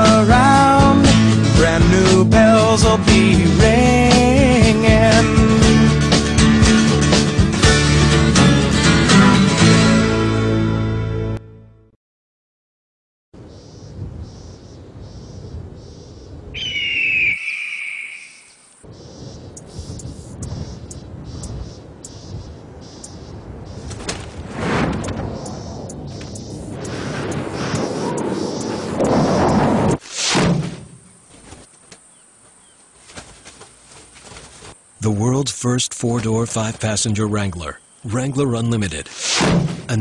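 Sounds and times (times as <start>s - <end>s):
hawk screaming: 16.6s - 18.7s
sharp ticks: 19.2s - 24.1s, 24.9s - 29.2s
whooshing rushes of air: 23.0s - 30.9s.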